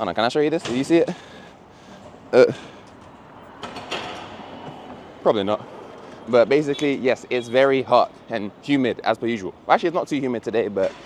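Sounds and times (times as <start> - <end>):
street ambience hiss: 0.0 - 11.0.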